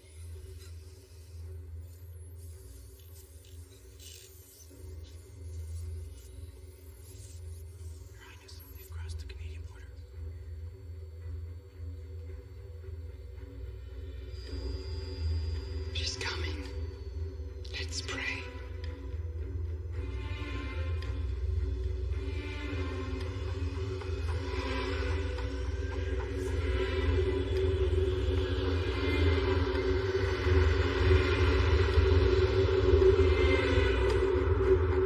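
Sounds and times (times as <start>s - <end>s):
steady high-pitched tone: 0.0s - 35.0s
low sustained drone: 4.7s - 35.0s.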